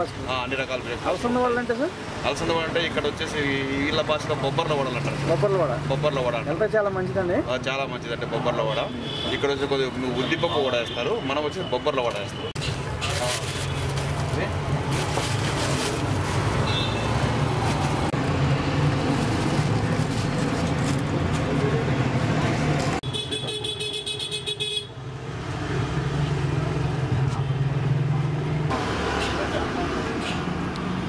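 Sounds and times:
car horns honking: 23.0s - 25.0s
passing vehicle engines: 25.0s - 31.0s.

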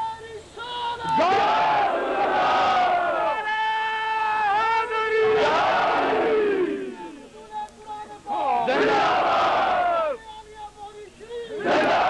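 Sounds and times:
crowd of men shouting: 0.8s - 7.3s, 8.1s - 10.2s, 11.3s - 12.0s.

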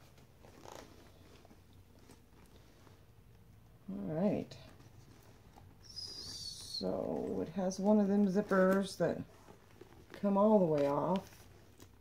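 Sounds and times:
faint handling noise: 0.0s - 12.0s
soft rustle: 0.0s - 12.0s.

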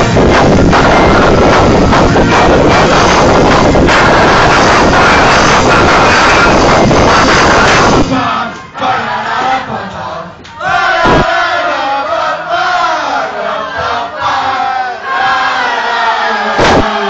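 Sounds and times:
crowd shouting and cheering: 0.0s - 17.0s.

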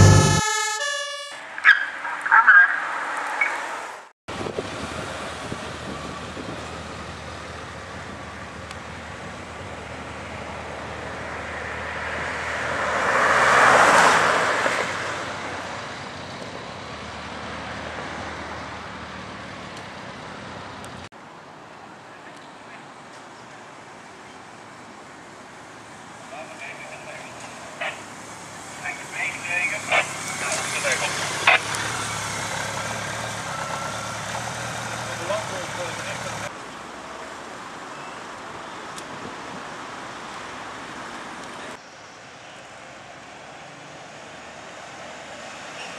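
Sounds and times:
siren bursts: 0.0s - 3.6s, 29.8s - 32.4s
ambulance siren passing: 0.0s - 3.7s, 26.4s - 36.5s.

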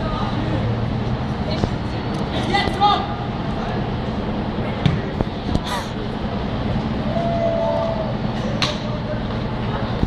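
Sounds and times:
engine running: 0.0s - 10.0s
street traffic rumble: 0.0s - 10.0s.

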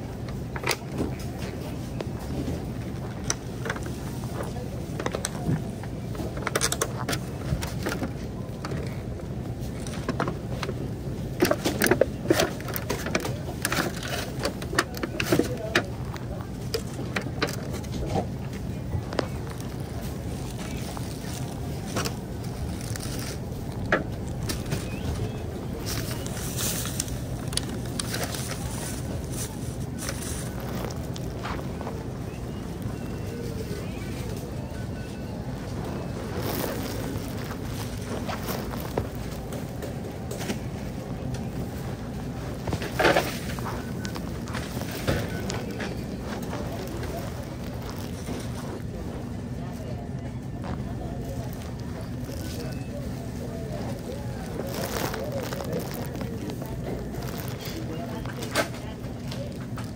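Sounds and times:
steady low hum: 0.0s - 59.9s
shopping cart rattling: 0.1s - 59.9s.

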